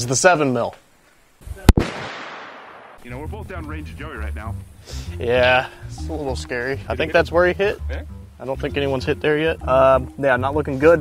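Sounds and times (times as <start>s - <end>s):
rifle shot with echo: 1.7s - 3.1s.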